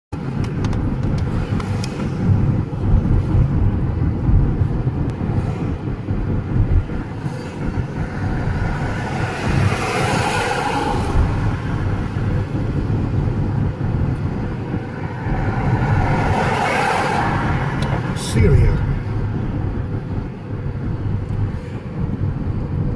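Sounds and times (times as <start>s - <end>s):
car engine and road noise: 0.1s - 22.9s
vehicles passing close by: 0.2s - 22.9s.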